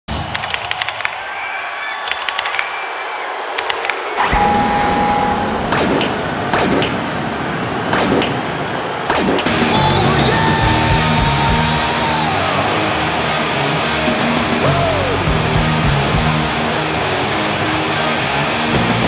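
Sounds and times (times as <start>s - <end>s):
rising high whistles: 1.3s - 10.9s
rapid clicks and short beeps: 3.6s - 9.5s.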